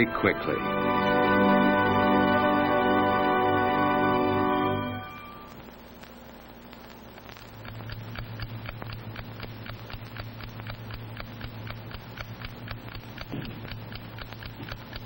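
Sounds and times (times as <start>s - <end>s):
alarm clock ticking: 7.6s - 15.0s.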